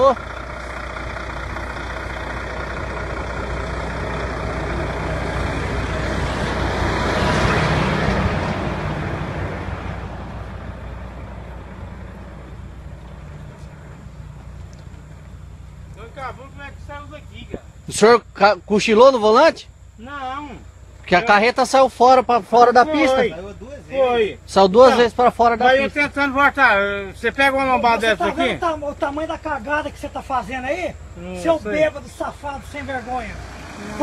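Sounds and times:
vehicle passing on highway: 0.0 - 18.0, 19.7 - 34.0
low engine hum: 0.0 - 34.0.

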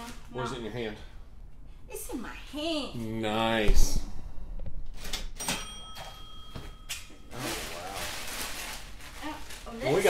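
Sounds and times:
faint high ringing tone: 5.4 - 7.4
plastic trash bag crinkling: 7.3 - 10.0.

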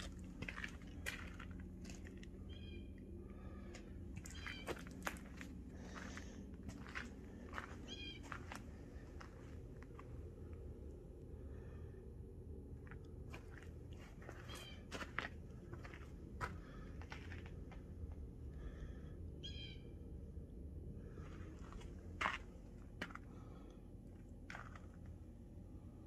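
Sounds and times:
footsteps crunching on frosty ground: 0.0 - 2.6, 3.4 - 10.1, 13.3 - 17.6, 21.2 - 23.5
low rumble of outdoor air: 0.0 - 26.0.

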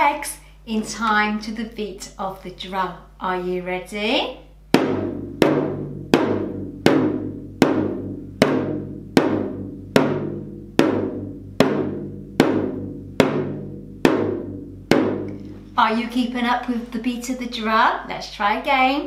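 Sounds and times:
toy drum beaten with sticks: 4.7 - 15.5.

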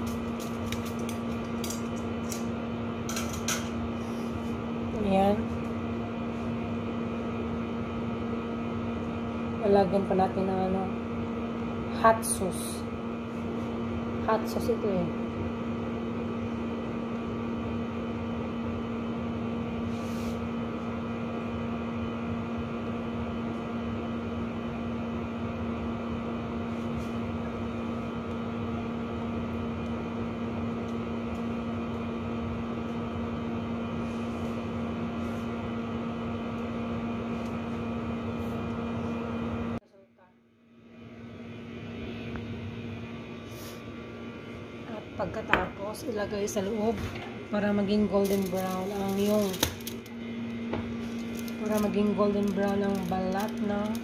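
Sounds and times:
appliance electrical hum: 0.0 - 54.0.

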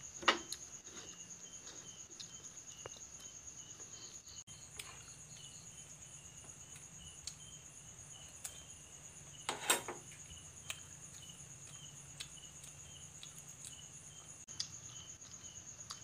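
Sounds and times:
crickets chirping: 0.0 - 16.0.

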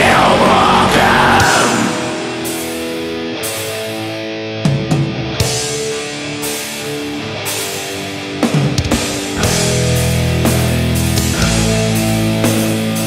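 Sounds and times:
slow sustained metal guitars: 0.0 - 13.0.

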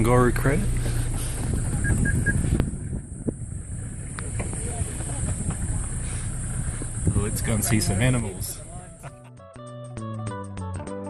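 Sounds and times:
vehicle engine and road rumble: 0.0 - 9.2.

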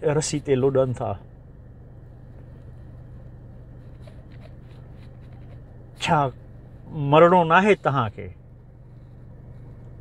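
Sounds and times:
low hum in car cabin: 0.0 - 10.0.

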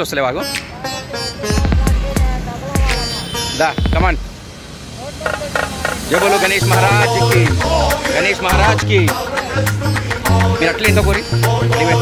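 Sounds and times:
voices chanting: 5.0 - 12.0.

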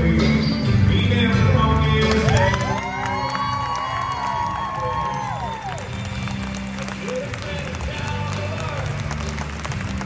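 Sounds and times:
performance music: 0.0 - 10.0
crowd cheering and whooping: 2.2 - 9.0.

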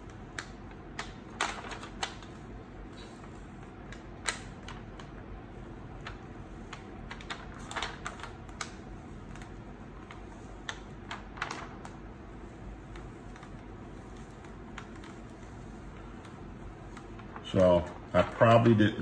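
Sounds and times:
plastic sheet peeling crackles: 0.0 - 19.0.

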